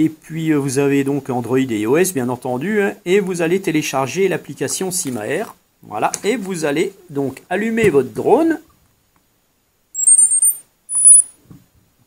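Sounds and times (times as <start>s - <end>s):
high electronic beeps: 10.0s - 11.4s.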